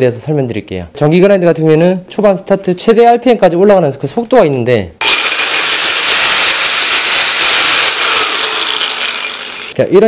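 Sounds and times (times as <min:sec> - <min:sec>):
angle grinder whining: 0:05.0 - 0:09.8.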